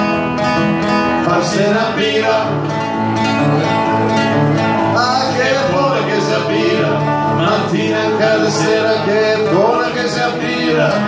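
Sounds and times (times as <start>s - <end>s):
acoustic guitar strumming: 0.0s - 11.0s
person singing folk song: 0.0s - 11.0s.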